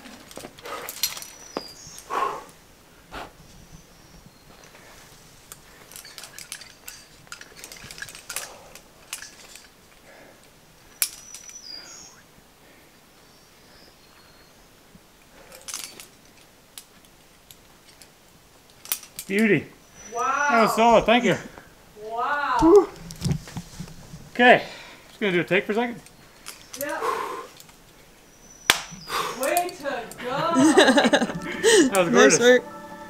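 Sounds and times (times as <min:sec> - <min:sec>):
climbing gear clinking: 0:00.0 - 0:02.0, 0:05.4 - 0:12.1, 0:15.3 - 0:21.4, 0:25.6 - 0:28.0, 0:29.3 - 0:32.0.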